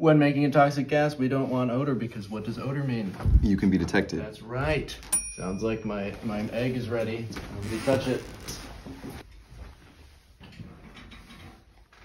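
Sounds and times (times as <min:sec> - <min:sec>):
soft chair creaks: 0:07.4 - 0:09.3.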